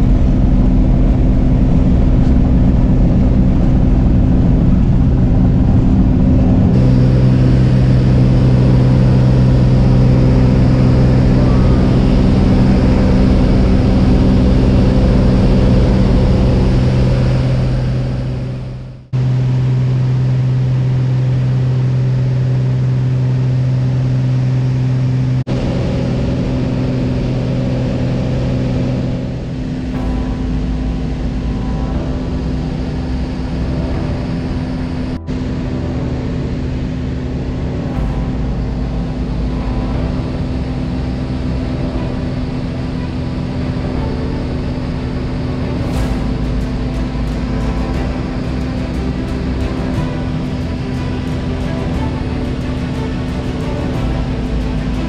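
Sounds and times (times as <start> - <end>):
light aircraft engine droning: 0.0 - 55.0.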